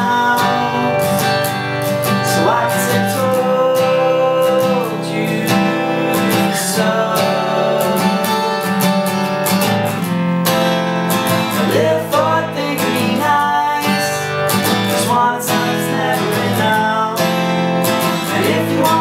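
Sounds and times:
men singing: 0:00.0 - 0:09.4, 0:11.4 - 0:19.0
acoustic guitar strumming: 0:00.0 - 0:19.0.

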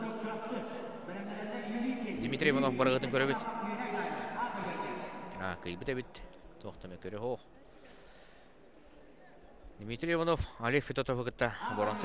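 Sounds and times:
sports hall noise: 0:00.0 - 0:12.0.

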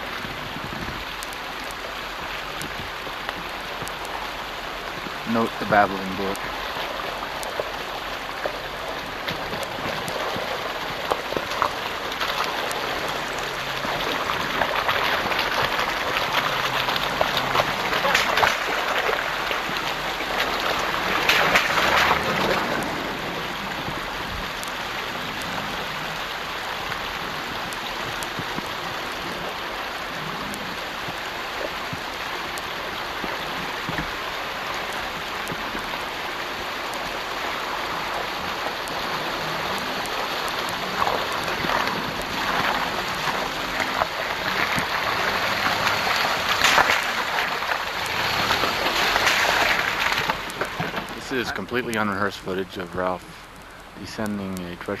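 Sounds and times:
brook babbling over rocks: 0:00.0 - 0:55.0.

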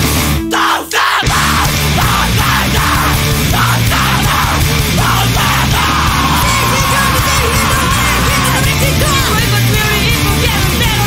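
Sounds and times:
screamo rock music: 0:00.0 - 0:11.0
screamed vocal: 0:00.5 - 0:09.5.

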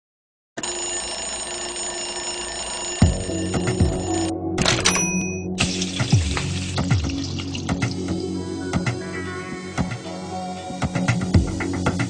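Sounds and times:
alarm clock ringing: 0:00.6 - 0:05.6
music with low beat: 0:03.0 - 0:04.8, 0:05.4 - 0:12.0.

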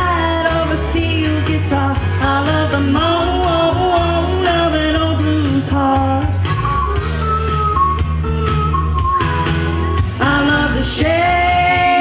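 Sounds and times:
woman singing through pa: 0:00.0 - 0:06.3, 0:10.2 - 0:12.0
country-rock band: 0:00.0 - 0:12.0.

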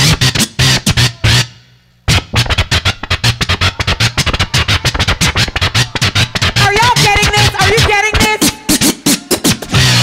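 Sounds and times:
turntable scratching: 0:00.0 - 0:01.5, 0:02.1 - 0:10.0
beat with bass line: 0:02.1 - 0:10.0.

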